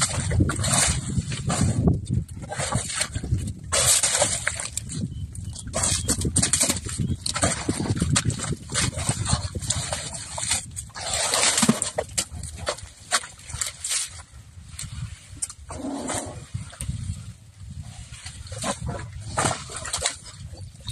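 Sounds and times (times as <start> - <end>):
scuffs and thuds of mud: 0.0 - 20.9
elephant noises: 15.7 - 16.5.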